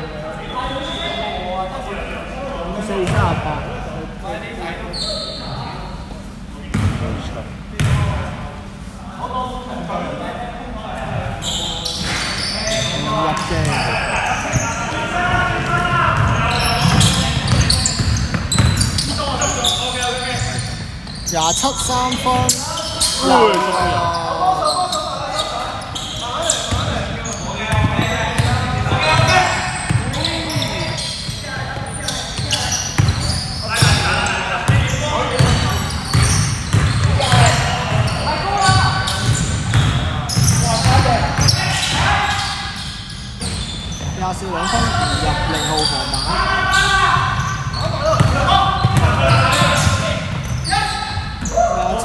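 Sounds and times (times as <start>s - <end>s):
players calling out: 11.4s - 42.9s.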